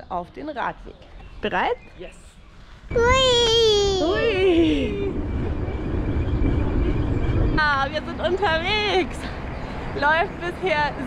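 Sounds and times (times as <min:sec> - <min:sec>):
wind buffeting microphone: 0:00.3 - 0:11.0
bike tyre rumble on pavement: 0:04.0 - 0:11.0.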